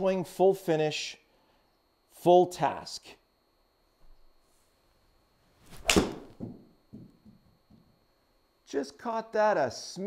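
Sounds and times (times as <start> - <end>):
golf club swishing: 5.6 - 6.4
golf club striking ball: 5.8 - 6.6.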